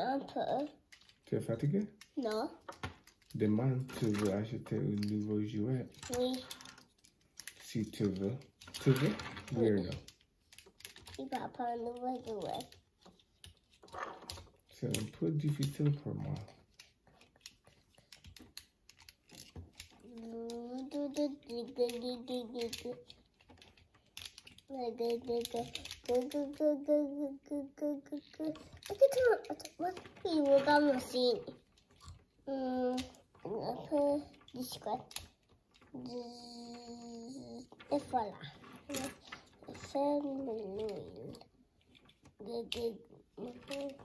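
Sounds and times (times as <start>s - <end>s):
plastic toy parts clicking: 0.0s - 44.0s.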